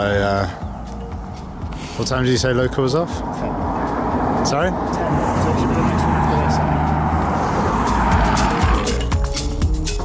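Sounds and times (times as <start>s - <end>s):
car engine hum: 0.0s - 10.0s
music: 0.0s - 10.0s
car passing by: 1.8s - 9.1s.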